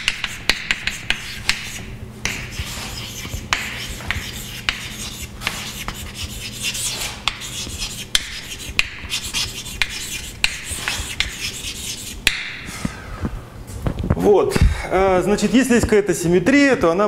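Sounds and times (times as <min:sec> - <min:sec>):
chalk tapping on board: 0:00.0 - 0:12.6
chalk scratching on blackboard: 0:00.0 - 0:12.7.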